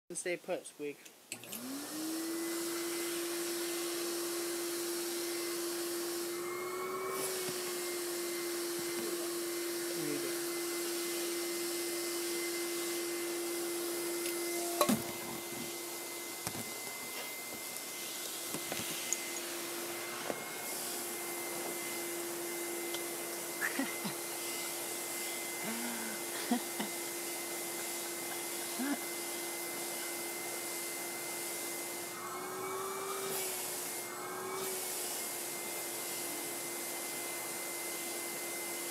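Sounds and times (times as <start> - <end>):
vacuum cleaner running: 1.4 - 38.9.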